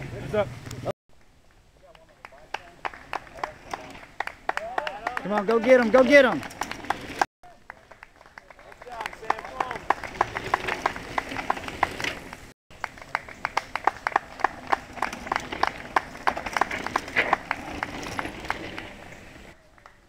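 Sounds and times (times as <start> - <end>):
spectators clapping rhythmically: 2.2 - 6.1, 6.9 - 11.9, 12.7 - 18.0.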